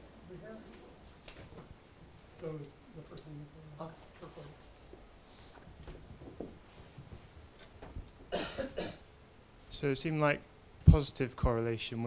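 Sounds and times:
person coughing: 0:08.3 - 0:09.1.

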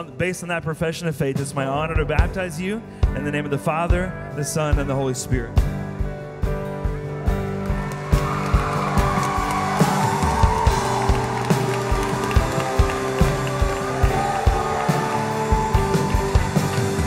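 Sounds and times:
held keyboard chords: 0:02.0 - 0:17.0
steady kick drum beat: 0:06.9 - 0:17.0.

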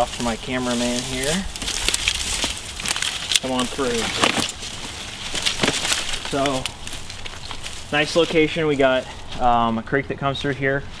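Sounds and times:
twigs crackling and snapping: 0:00.0 - 0:09.5
footsteps through dry leaves: 0:00.0 - 0:09.7.

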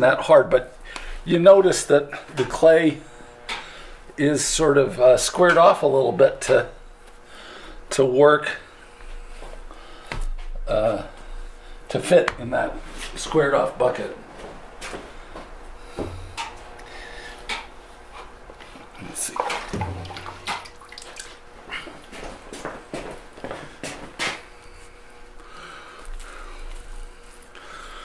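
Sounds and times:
wet splashy noise: 0:19.3 - 0:21.5.

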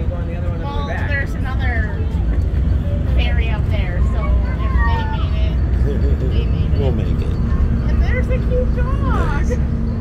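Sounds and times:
passengers' voices: 0:00.0 - 0:10.0
ship engines humming and rumbling: 0:00.0 - 0:10.0.

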